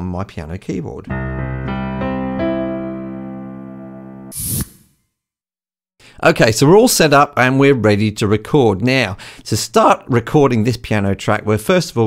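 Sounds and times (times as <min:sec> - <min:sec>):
piano chords ringing: 0:01.1 - 0:04.3
short hissy noise: 0:04.3 - 0:04.9.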